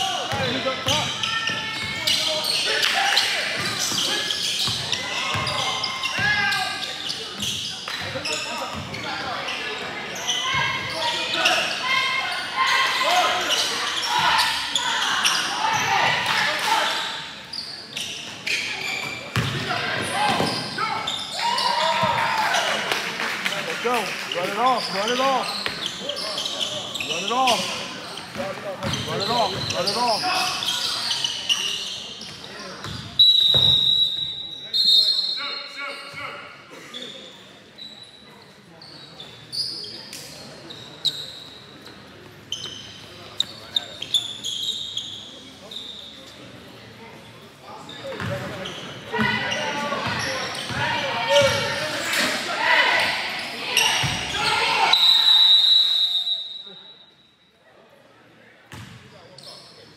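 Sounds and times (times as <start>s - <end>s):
sneakers squeaking: 0.0s - 22.9s, 23.8s - 55.6s, 58.7s - 59.9s
voices echoing in hall: 0.0s - 59.9s
basketball bouncing on court: 19.3s - 19.7s, 28.3s - 29.8s, 32.8s - 33.8s, 48.2s - 48.5s, 50.0s - 50.8s, 58.7s - 59.0s.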